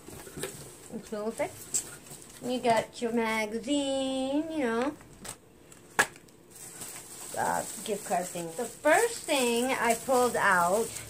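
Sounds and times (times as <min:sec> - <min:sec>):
packaging being handled: 0:06.1 - 0:11.0.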